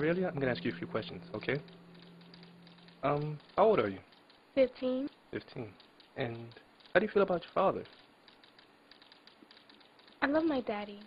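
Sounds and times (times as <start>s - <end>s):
light clicks: 1.4s - 4.4s, 5.0s - 11.0s.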